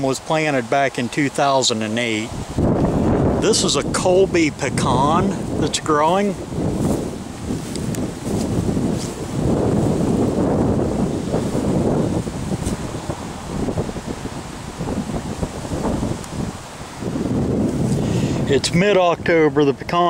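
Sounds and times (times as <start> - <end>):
wind rumbling on microphone: 0.0 - 20.0.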